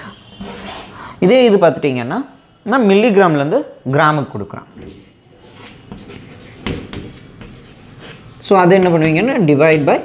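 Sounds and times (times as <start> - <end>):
chalk scratching on blackboard: 4.9 - 9.2.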